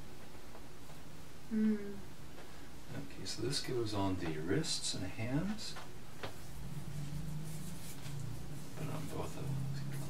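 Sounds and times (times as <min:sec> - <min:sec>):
fingers rubbing skin: 0:06.3 - 0:10.0
low hum: 0:06.4 - 0:10.0.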